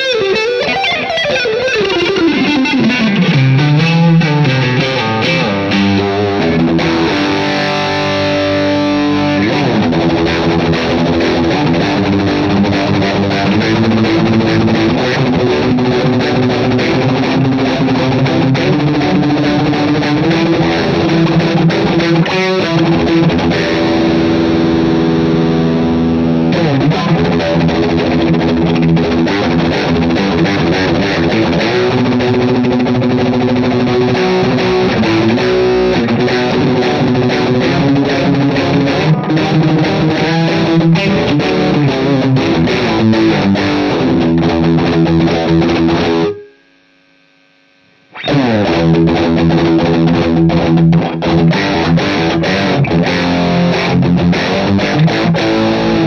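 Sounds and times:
distorted electric guitar lead: 0.0s - 56.0s.

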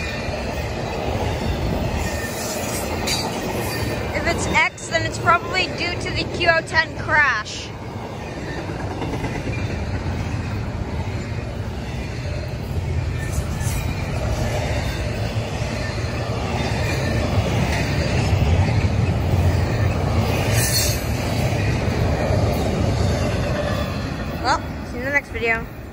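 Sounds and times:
train wheels rumbling on rail: 0.0s - 25.9s.

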